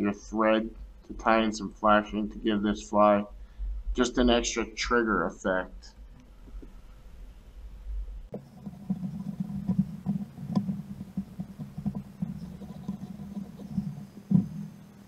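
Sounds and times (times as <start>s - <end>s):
low rubbing of thread: 8.2s - 15.0s
small irregular clicks: 8.3s - 15.0s.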